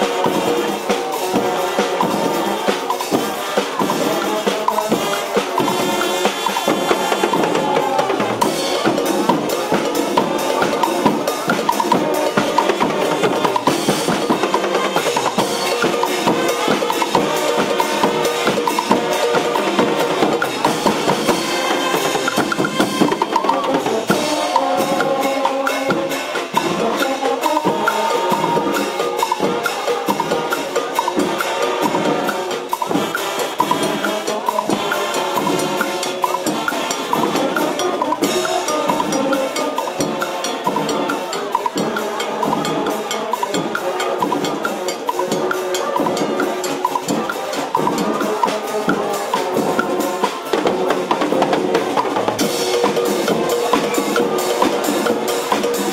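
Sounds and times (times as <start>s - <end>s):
brass horns playing melody: 0.0s - 55.9s
marching drums beating: 0.0s - 55.9s.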